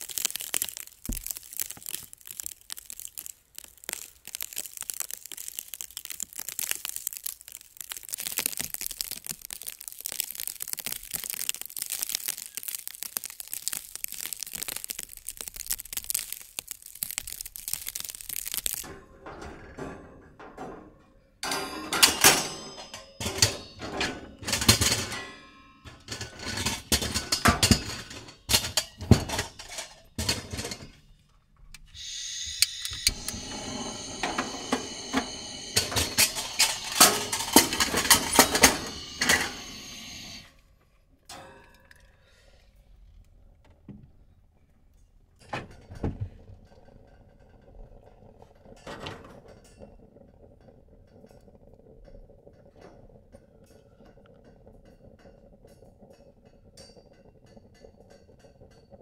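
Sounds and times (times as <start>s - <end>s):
steady hiss with rapid clicking: 0.0s - 18.9s, 31.8s - 40.5s
burner low hum: 32.0s - 40.4s.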